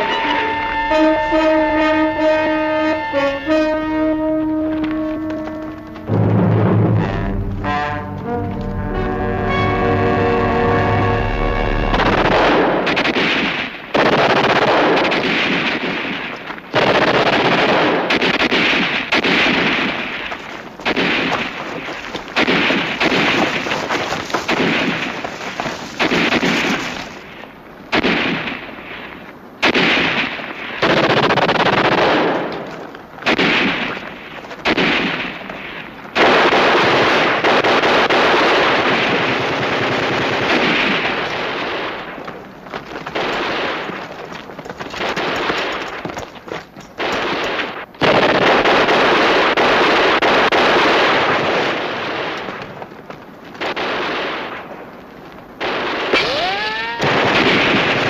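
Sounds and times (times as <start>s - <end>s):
machine-gun fire bursts: 12.0s - 25.3s, 29.6s - 32.6s, 33.2s - 42.2s, 43.0s - 44.1s, 47.0s - 52.4s, 55.6s - 58.0s.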